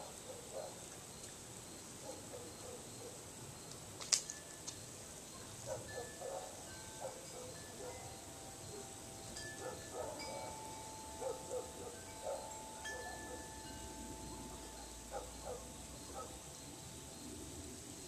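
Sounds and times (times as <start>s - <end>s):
metal wind chime ringing: 5.9s - 17.3s.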